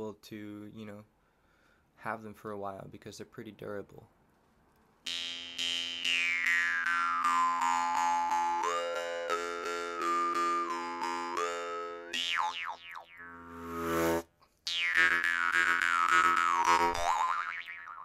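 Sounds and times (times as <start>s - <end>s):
jaw harp twanging: 5.1s - 18.0s.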